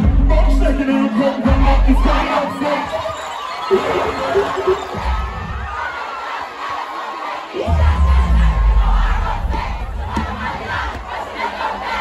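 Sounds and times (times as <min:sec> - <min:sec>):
deep bass from sound system: 0:00.0 - 0:00.8
crowd screaming and cheering: 0:00.0 - 0:12.0.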